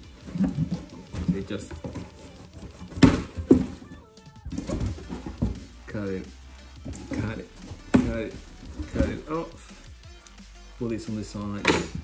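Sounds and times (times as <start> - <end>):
background music: 0.0 - 12.0
knocks on cardboard parcel: 2.8 - 3.8.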